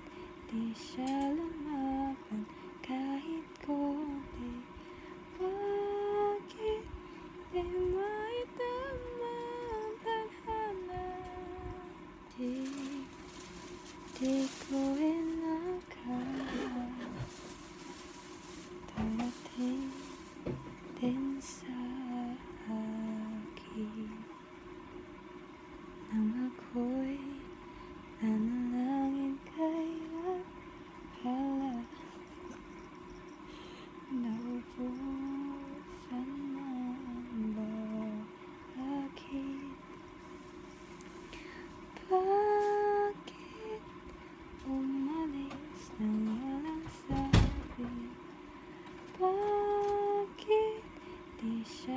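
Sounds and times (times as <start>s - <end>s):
person humming slow tune: 0.0s - 6.9s, 7.5s - 13.1s, 14.2s - 17.3s, 21.0s - 24.3s, 31.2s - 32.2s, 34.1s - 39.8s, 49.2s - 51.9s.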